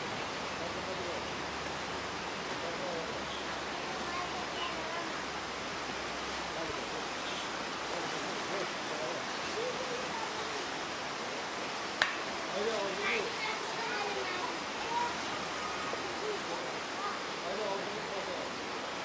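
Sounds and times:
river water rushing: 0:00.0 - 0:19.0.

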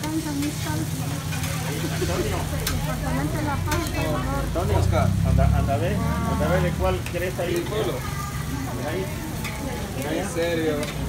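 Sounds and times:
food sizzling on a griddle: 0:00.0 - 0:11.0
voices talking: 0:00.0 - 0:11.0
metal spatula scraping and clicking: 0:00.4 - 0:02.9, 0:10.3 - 0:11.0.

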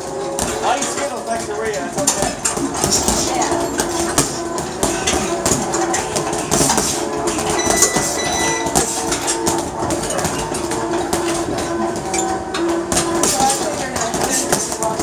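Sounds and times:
boxing gloves punching heavy bag: 0:00.0 - 0:15.0.

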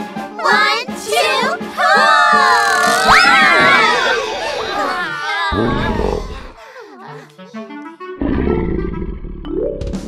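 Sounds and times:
cartoon dinosaur roar: 0:02.3 - 0:06.6, 0:08.2 - 0:09.4
musical cue of stepping notes: 0:09.5 - 0:10.0.

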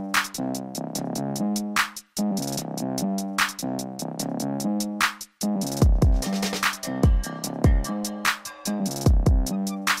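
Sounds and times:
electronic music with drum-machine beat: 0:00.0 - 0:10.0.

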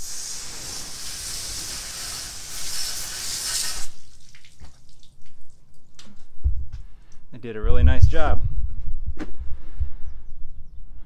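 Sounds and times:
hose water spraying: 0:00.0 - 0:05.8
faint dripping: 0:04.0 - 0:07.3.

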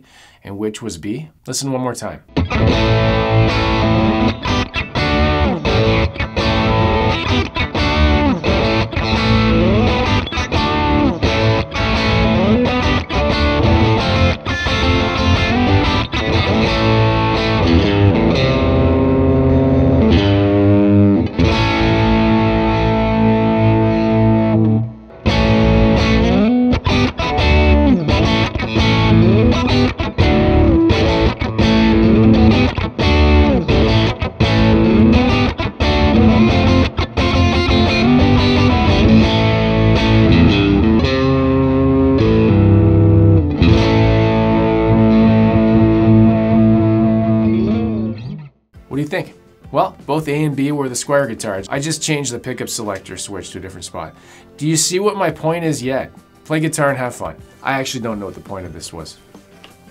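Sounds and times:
distorted electric guitar riff: 0:02.3 - 0:48.6.

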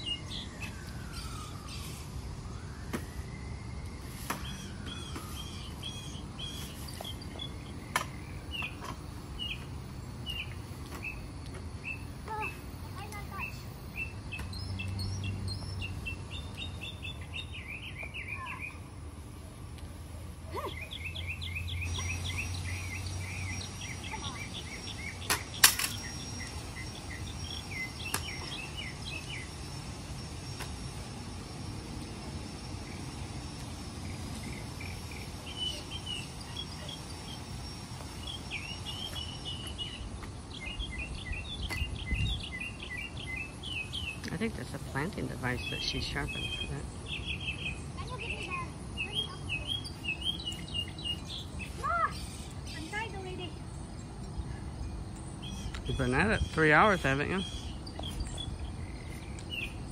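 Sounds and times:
songbirds chirping: 0:00.0 - 0:59.9.

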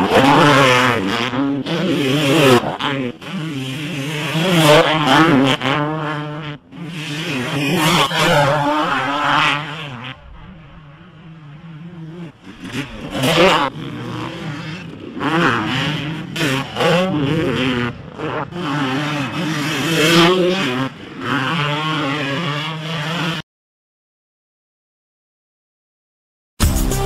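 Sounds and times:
dirt bike engines revving: 0:00.0 - 0:23.4.

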